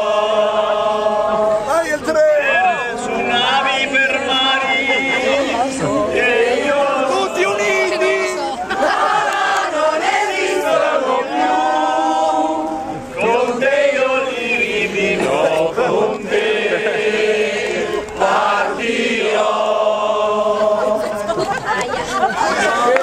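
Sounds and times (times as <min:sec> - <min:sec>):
group singing: 0:00.0 - 0:23.0.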